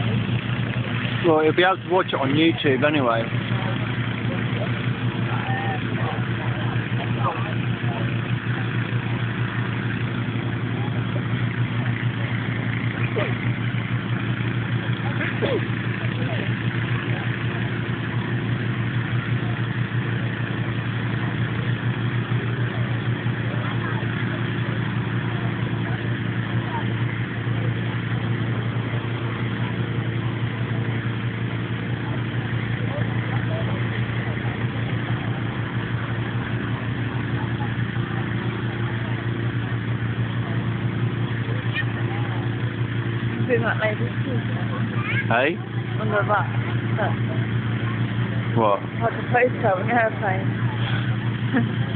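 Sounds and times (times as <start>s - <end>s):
inflator fan engine running: 0.0s - 51.9s.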